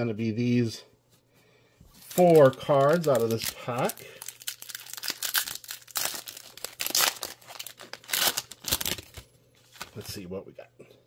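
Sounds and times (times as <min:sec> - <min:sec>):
foil wrapper tearing and crinkling: 0:02.0 - 0:10.0.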